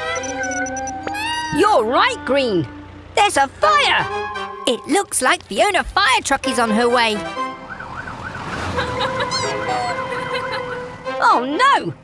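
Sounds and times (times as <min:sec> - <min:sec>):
cartoon fire truck siren: 0:00.0 - 0:01.6, 0:07.6 - 0:10.8
steady held siren tones: 0:00.0 - 0:01.6.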